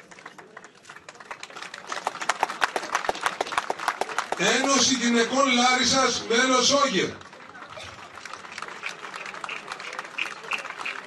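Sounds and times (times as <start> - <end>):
crowd applause: 0.0 - 11.0.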